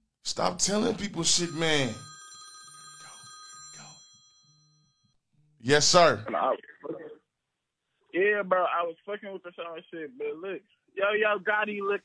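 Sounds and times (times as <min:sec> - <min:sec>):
high electronic ringing tones: 0:01.4 - 0:05.2.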